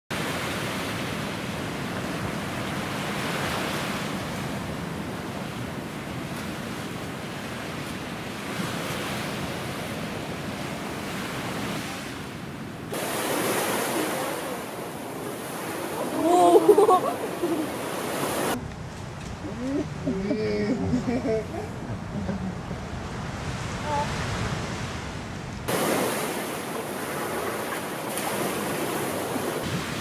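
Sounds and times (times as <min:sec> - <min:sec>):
rushing outdoor ambience: 0:00.1 - 0:30.0.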